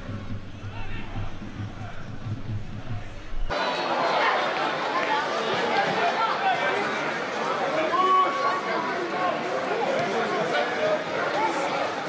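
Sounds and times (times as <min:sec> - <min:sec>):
players and crowd shouting: 0:03.5 - 0:12.0.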